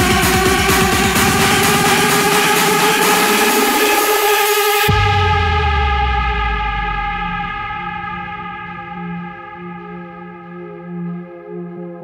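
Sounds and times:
electronic dance music: 0.0 - 12.0
deep sustained bass note: 4.9 - 11.0.

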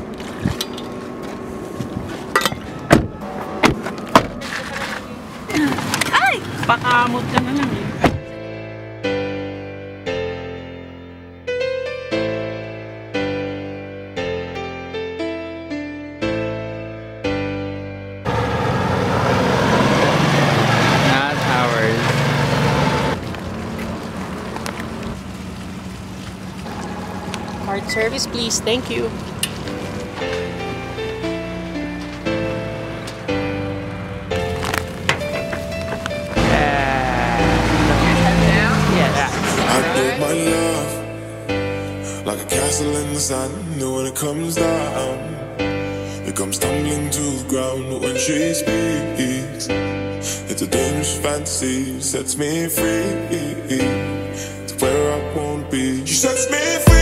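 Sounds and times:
car doors shutting: 0.0 - 8.4, 22.8 - 36.8
small cart engine driving by: 18.2 - 41.2.

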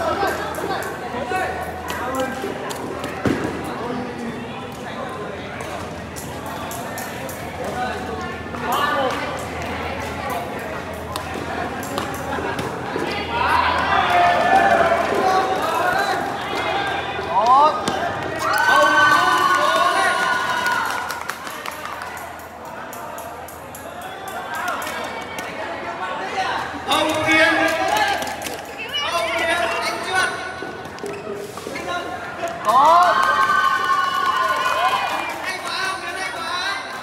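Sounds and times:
voices shouting in echoing hall: 0.0 - 37.0.

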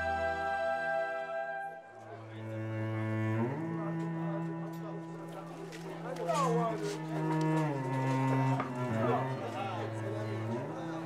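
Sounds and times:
crowd voices: 0.0 - 11.0
low bowed strings: 0.0 - 11.0.

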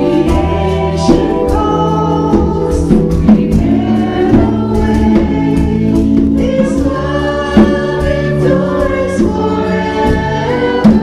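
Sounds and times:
keyboard: 0.0 - 11.0
voices singing through microphones: 0.0 - 11.0.

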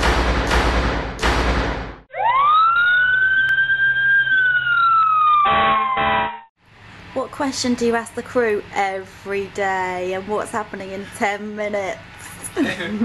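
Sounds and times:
fire engine siren wail: 2.1 - 6.5
short siren blasts: 2.1 - 6.5.

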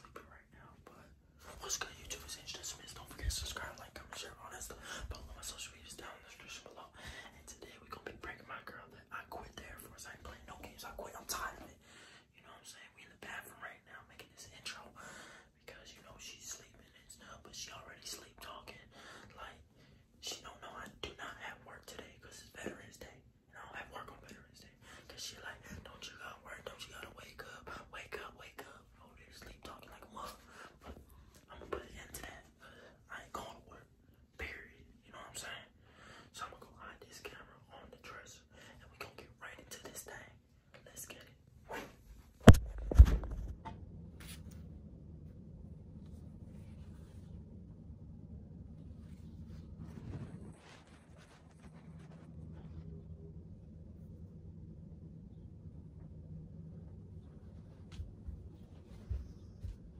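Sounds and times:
man whispering: 0.0 - 42.6.

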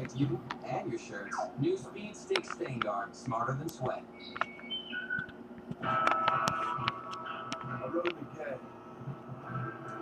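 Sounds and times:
commercial music with held tones: 0.0 - 10.0.

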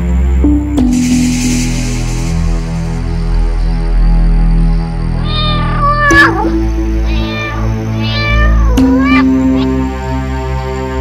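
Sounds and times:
background music with low tones: 0.0 - 11.0
cat meowing: 5.2 - 9.9.

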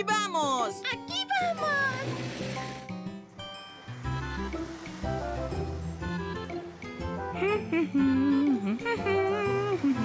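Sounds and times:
instrumental cartoon music: 0.0 - 10.0.

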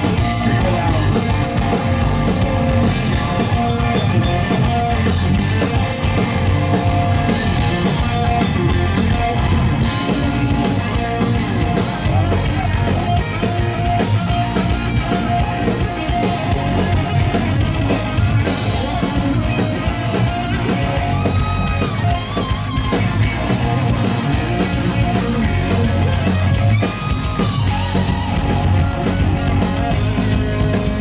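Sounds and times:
live thrash metal band: 0.0 - 31.0.

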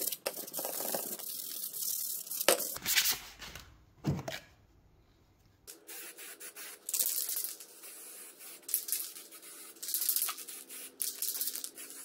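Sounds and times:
spray-paint can hissing: 5.9 - 12.0.

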